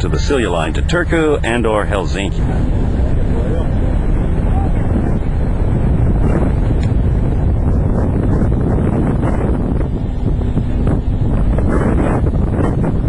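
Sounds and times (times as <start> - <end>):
ship running noise: 0.0 - 13.0
wind buffeting microphone: 0.0 - 13.0.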